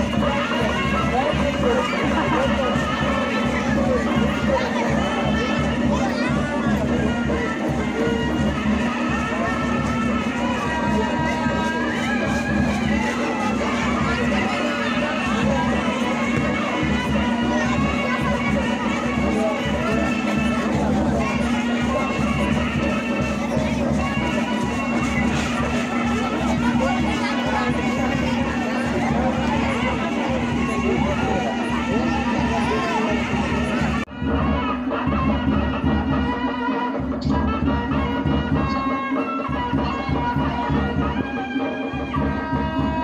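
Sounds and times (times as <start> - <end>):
drum rhythm: 0.0 - 38.8
crowd voices: 0.0 - 43.0
folk dance music: 0.0 - 43.0
reedy wind instrument drone: 0.0 - 43.0.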